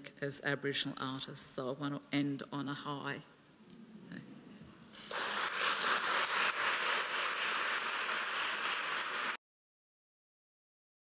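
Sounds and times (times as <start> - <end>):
audience applauding: 5.0 - 9.4.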